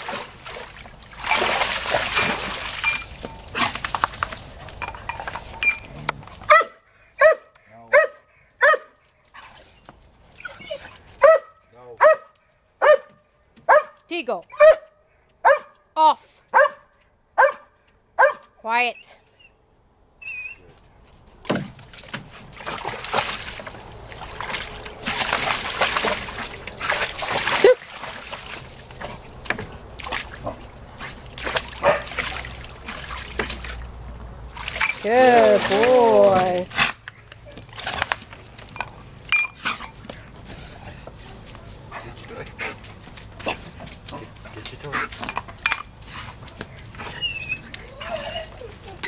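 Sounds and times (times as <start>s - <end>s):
dog splashing in water: 0.0s - 5.8s, 21.2s - 49.0s.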